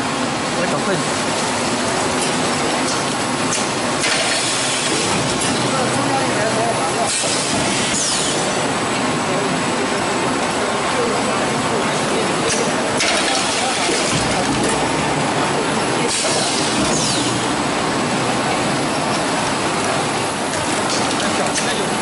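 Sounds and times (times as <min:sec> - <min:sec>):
machinery clatter and rumble: 0:00.0 - 0:22.0.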